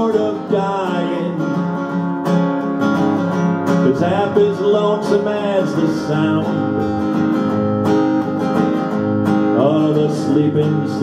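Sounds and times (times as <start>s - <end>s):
acoustic guitar strumming: 0.0s - 11.0s
person singing country song: 0.0s - 11.0s.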